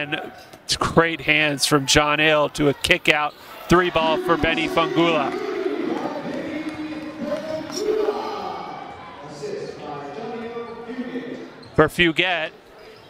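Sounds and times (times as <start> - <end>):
chatter of voices: 1.5 - 11.6.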